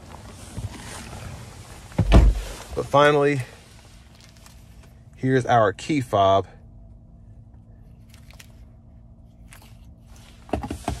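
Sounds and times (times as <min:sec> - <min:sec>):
low steady hum: 0:00.0 - 0:11.0
faint clicks and rustles: 0:03.6 - 0:05.1.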